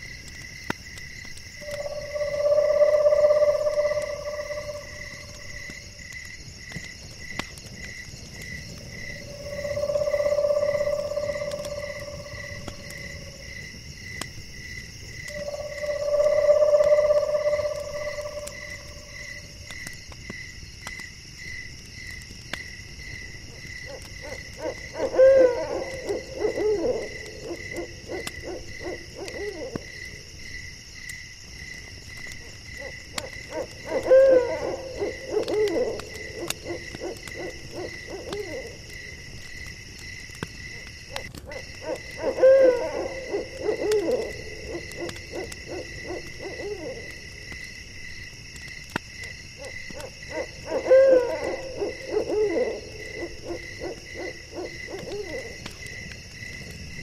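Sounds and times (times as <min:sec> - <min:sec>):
crickets chirring: 0:00.0 - 0:57.0
owl hooting: 0:01.6 - 0:05.6, 0:09.3 - 0:13.4, 0:15.3 - 0:19.2, 0:24.2 - 0:29.8, 0:33.5 - 0:38.8, 0:41.8 - 0:47.1, 0:50.3 - 0:55.6.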